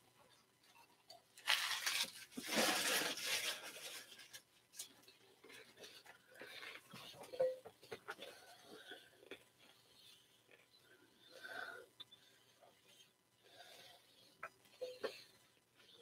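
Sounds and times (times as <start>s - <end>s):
card packs and wrappers rustling: 1.4s - 5.0s.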